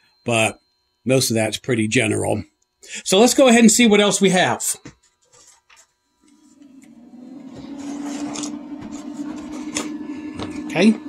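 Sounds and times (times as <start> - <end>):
low machine hum: 6.1 - 11.0.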